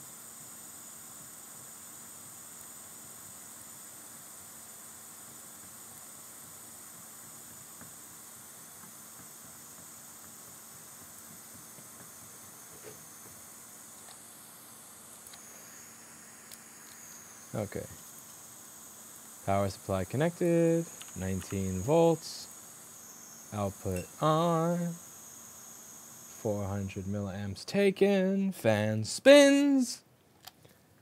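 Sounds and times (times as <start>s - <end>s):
steady hiss: 0.0s - 31.0s
low hum: 15.3s - 27.6s.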